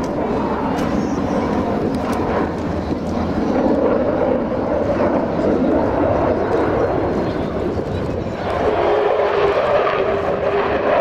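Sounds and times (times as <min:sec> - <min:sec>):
fighter jet noise overhead: 0:00.0 - 0:11.0.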